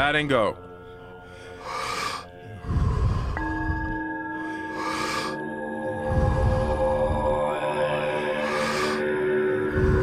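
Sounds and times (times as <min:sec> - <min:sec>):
ambient music drone: 0:00.0 - 0:10.0
deep breathing on microphone: 0:00.8 - 0:10.0.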